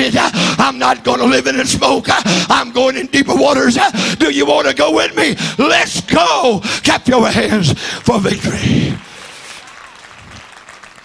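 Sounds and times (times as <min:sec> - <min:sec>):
congregation clapping: 0:06.8 - 0:11.0.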